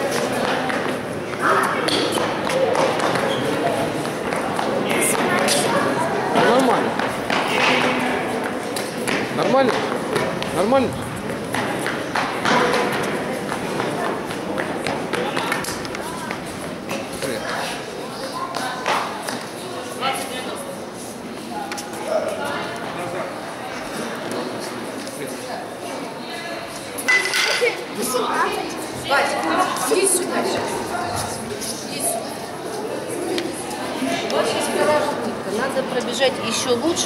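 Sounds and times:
chatter of many voices: 0.0s - 37.0s.

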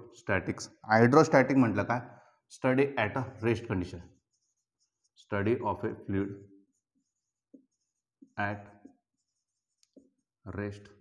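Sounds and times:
man speaking: 0.0s - 2.0s, 2.6s - 4.0s, 5.2s - 6.3s, 8.4s - 8.6s
marker writing on whiteboard: 3.4s - 11.0s.

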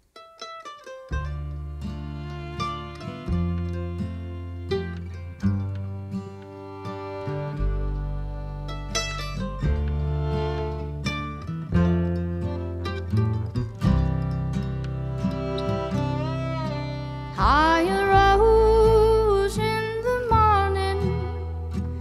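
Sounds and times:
acoustic guitar: 0.0s - 22.0s
fiddle: 0.0s - 22.0s
mandolin picking: 0.0s - 22.0s
upright bass: 1.1s - 22.0s
woman singing: 17.4s - 22.0s.

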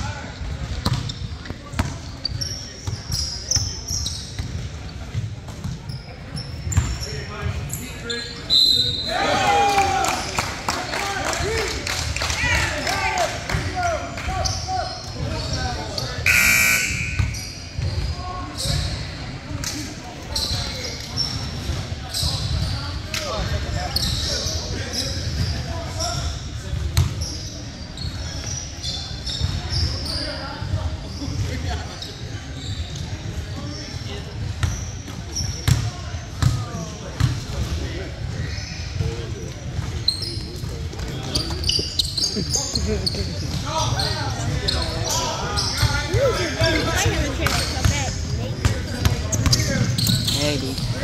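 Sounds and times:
echoing chatter: 0.0s - 51.0s.

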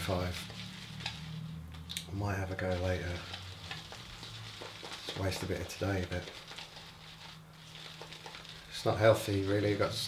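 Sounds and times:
shaving brush lathering: 0.0s - 10.0s.

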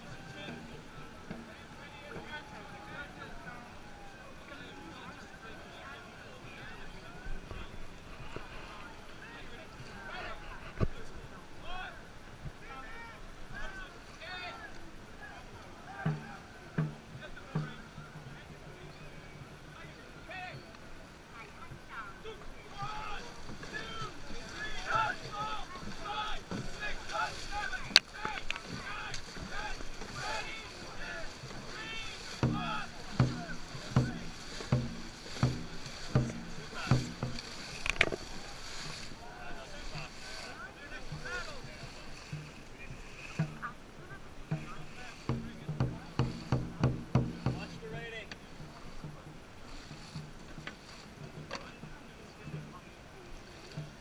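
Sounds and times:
water splashing along hull: 0.0s - 54.0s
crew shouting calls: 21.8s - 48.8s
drum beaten quickly: 28.7s - 38.2s, 44.4s - 48.0s.

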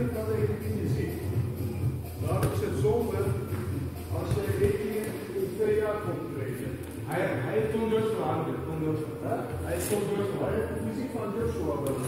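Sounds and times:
indistinct voices in echoing hall: 2.3s - 12.0s.

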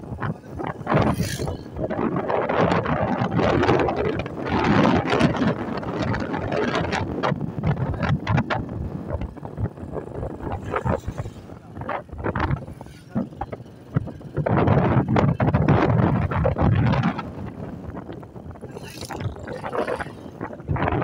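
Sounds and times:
wind buffeting microphone: 0.0s - 21.0s
vehicle running: 3.8s - 21.0s.

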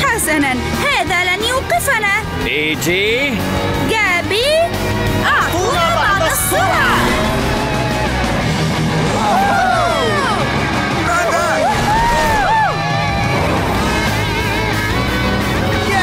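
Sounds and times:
upbeat music: 0.0s - 16.0s
monster truck engine: 4.7s - 16.0s
race sound effects: 5.3s - 16.0s.

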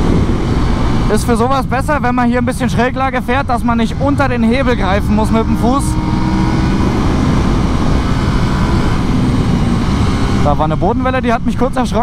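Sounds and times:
wind rush on microphone: 0.0s - 2.5s
motorcycle engine running: 0.0s - 12.0s.

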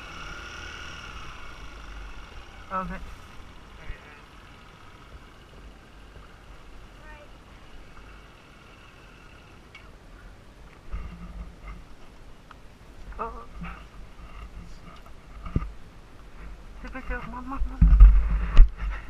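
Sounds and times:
steady low rumble: 0.0s - 8.9s.

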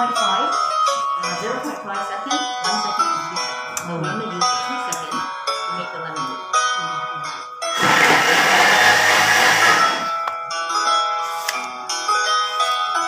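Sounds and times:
background music: 0.0s - 13.0s
food processor blade whirring: 7.8s - 10.2s.

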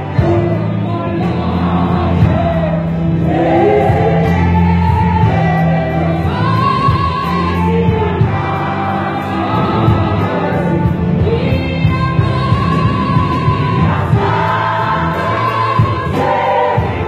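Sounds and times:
bass guitar: 0.0s - 17.0s
choir singing gospel: 0.0s - 17.0s
keyboard: 0.0s - 17.0s.

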